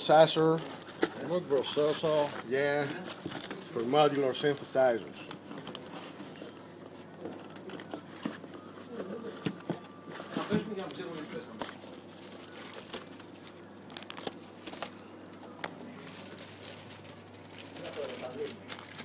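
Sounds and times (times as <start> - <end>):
plastic wrapping crinkling: 0.0 - 19.0.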